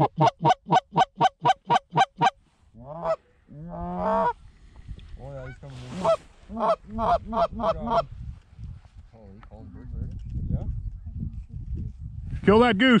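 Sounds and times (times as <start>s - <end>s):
reed goose call honks: 0.0s - 4.4s, 5.4s - 8.1s.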